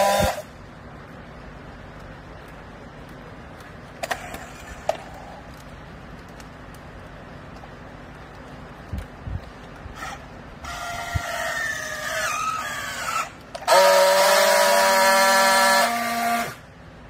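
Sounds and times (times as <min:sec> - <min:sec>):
strapping tool motor whine: 0:00.0 - 0:00.5, 0:10.0 - 0:16.6.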